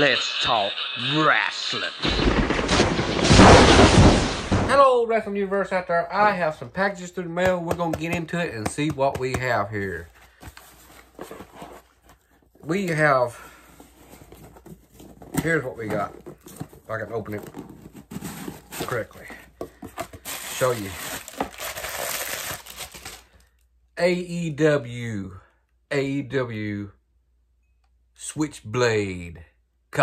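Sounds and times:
plastic wrapping crinkling: 0:14.1 - 0:23.6.

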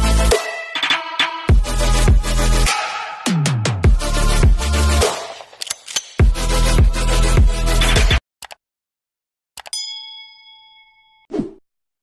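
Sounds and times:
notification bell ding: 0:09.7 - 0:11.3.

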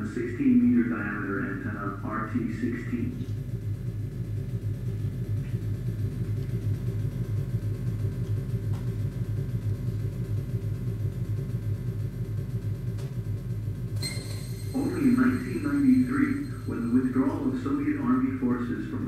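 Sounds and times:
vehicle driving rumble: 0:00.0 - 0:19.0.

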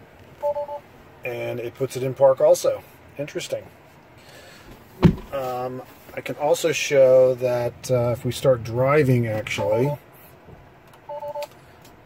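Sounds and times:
two-tone seat-belt chime beeps: 0:11.1 - 0:11.5.

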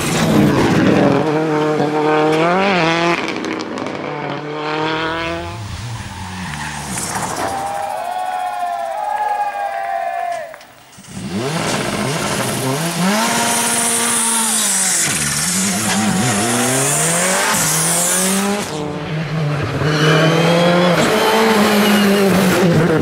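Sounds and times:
rally car engines revving: 0:00.0 - 0:09.0, 0:10.9 - 0:23.0
tyre squeal: 0:19.8 - 0:22.4.

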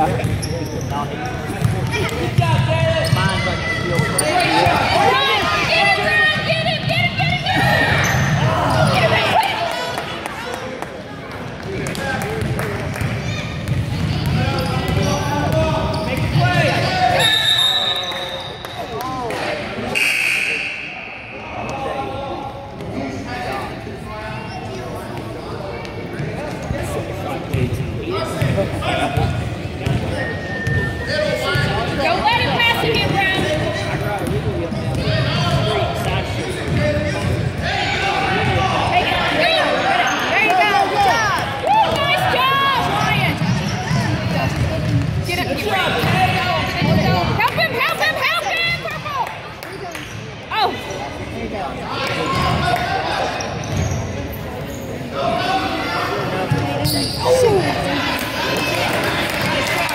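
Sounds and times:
sneakers squeaking: 0:00.0 - 0:09.4, 0:12.4 - 0:19.0, 0:24.4 - 0:37.6, 0:41.3 - 0:47.1, 0:53.2 - 0:55.2, 0:56.1 - 0:58.0.

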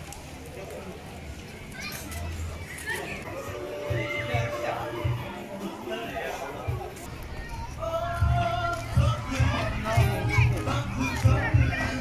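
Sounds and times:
children shouting and playing: 0:00.0 - 0:12.0
scattered voices: 0:00.2 - 0:12.0.

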